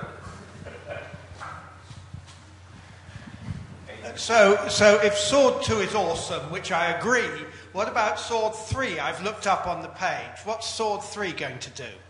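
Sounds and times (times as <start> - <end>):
low knocks and shuffling: 0.0 - 4.0.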